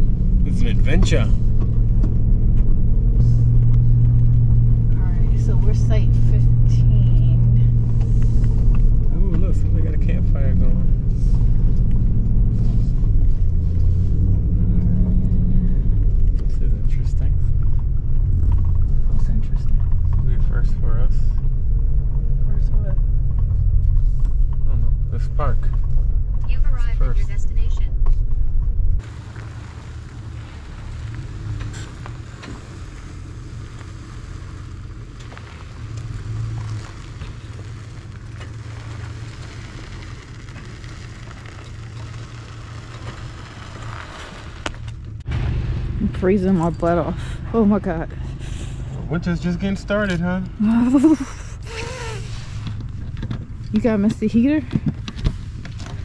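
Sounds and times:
road rumble: 0:00.0 - 0:56.0
vehicle engine droning under load: 0:00.0 - 0:56.0
outdoor hiss: 0:29.0 - 0:46.6, 0:48.3 - 0:52.8.

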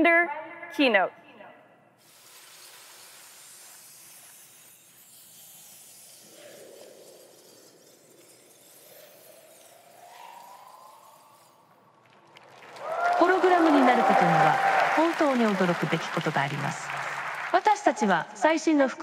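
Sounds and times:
shimmering glassy hiss: 0:02.0 - 0:16.1
slow rising tone: 0:06.6 - 0:13.1.

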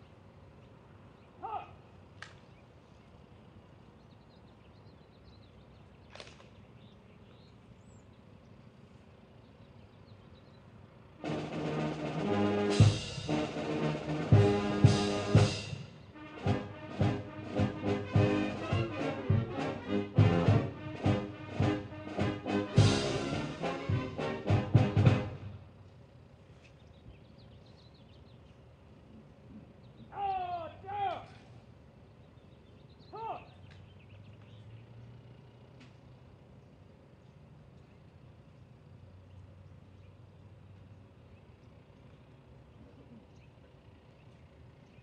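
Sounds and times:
military brass band with drums: 0:11.2 - 0:25.7.

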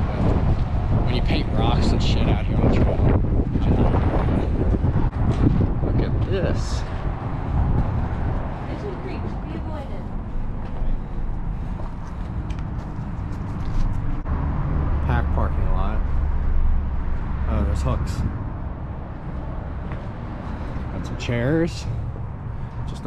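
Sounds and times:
low rumble of road traffic: 0:00.0 - 0:23.0.

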